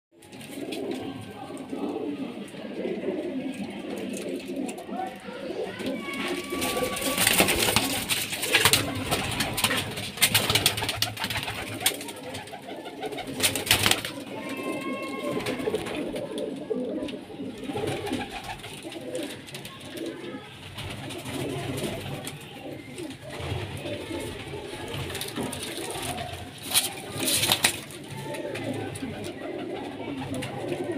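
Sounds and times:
pigeons cooing: 0:00.2 - 0:30.9
sharp clicks and rustles: 0:20.8 - 0:29.3.

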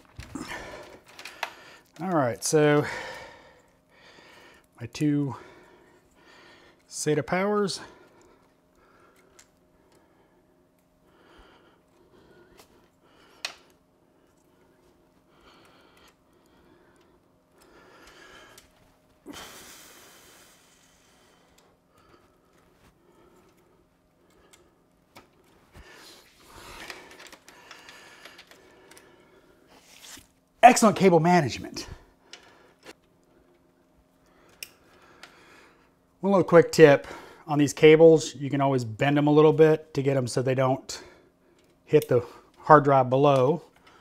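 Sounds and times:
cables rustling: 0:00.0 - 0:36.0
faint steady hum: 0:00.0 - 0:44.0.

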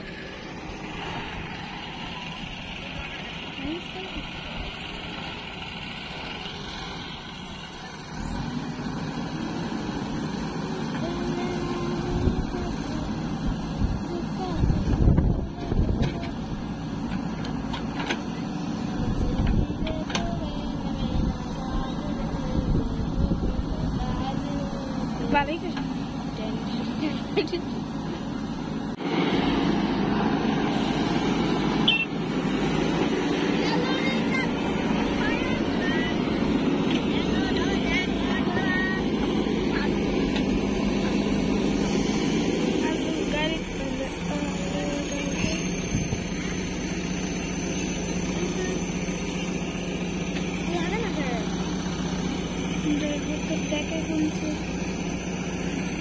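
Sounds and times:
diesel engine running: 0:00.0 - 0:56.0.

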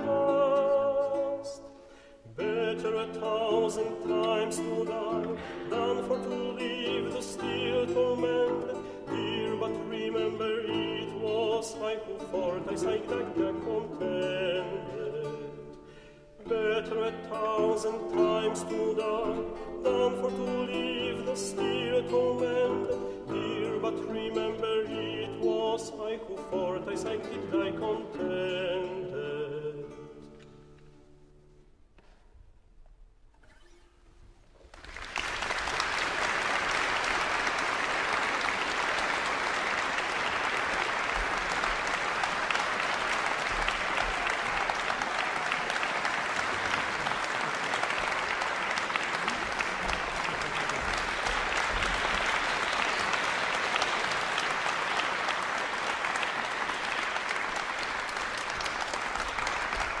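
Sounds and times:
audience applauding: 0:34.6 - 1:00.0.

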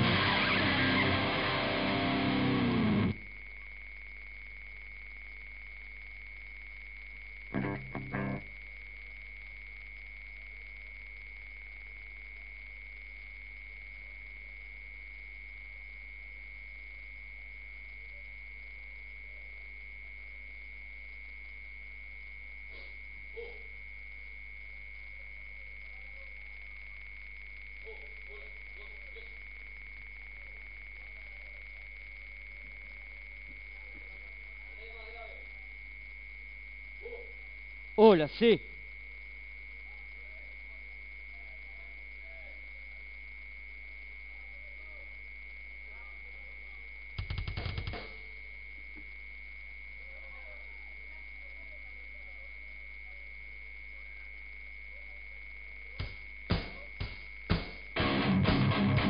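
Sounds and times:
high-pitched electronic tone: 0:00.0 - 0:03.2, 0:07.6 - 0:08.4.

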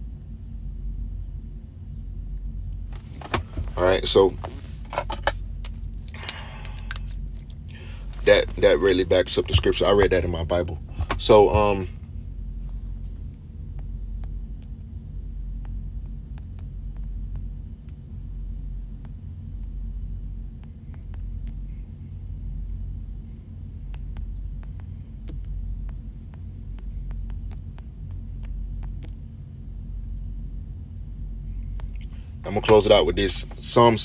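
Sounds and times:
low steady rumble: 0:00.0 - 0:34.0.

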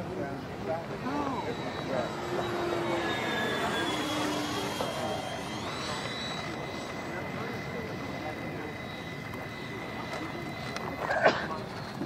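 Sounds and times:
electric fans whining: 0:00.0 - 0:12.0
rising fan tone: 0:00.3 - 0:11.0.

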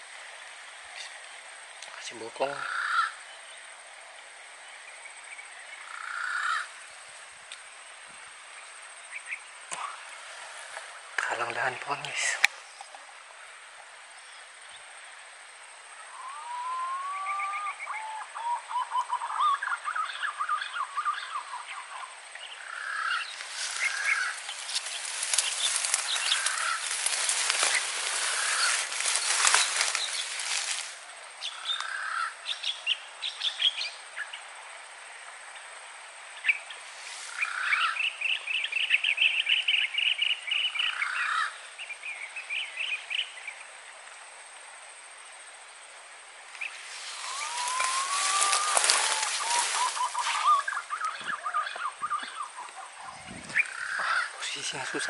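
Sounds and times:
pigeons calling: 0:02.4 - 0:03.2, 0:05.8 - 0:06.8, 0:16.2 - 0:33.7, 0:36.5 - 0:39.9, 0:46.6 - 0:55.0
rough crackling noise: 0:23.3 - 0:31.1, 0:46.8 - 0:51.2.

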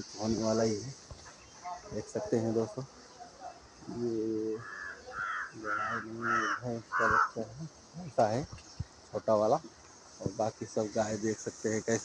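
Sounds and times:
crow cawing: 0:04.5 - 0:07.5.

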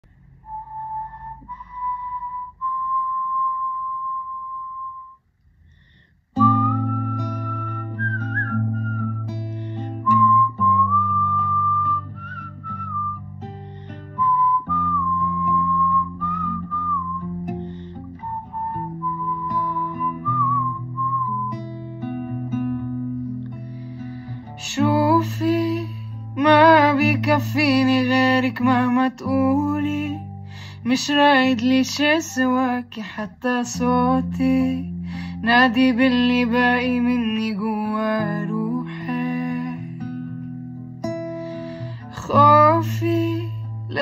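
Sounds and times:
person whistling a slow melody: 0:00.4 - 0:05.2, 0:06.4 - 0:22.0
acoustic guitar picking chords: 0:06.3 - 0:44.0.

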